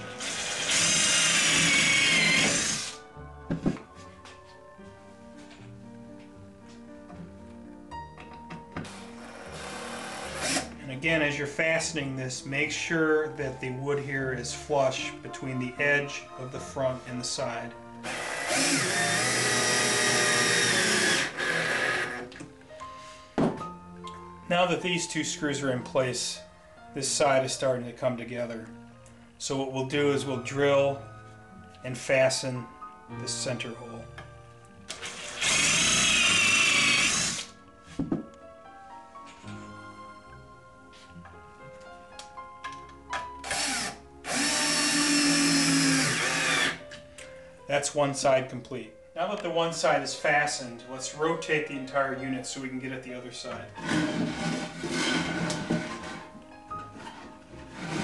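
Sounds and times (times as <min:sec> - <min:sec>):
cordless drill driving screw: 0:00.1 - 0:03.0, 0:08.9 - 0:10.8, 0:18.0 - 0:22.3, 0:34.9 - 0:37.5, 0:43.4 - 0:46.8.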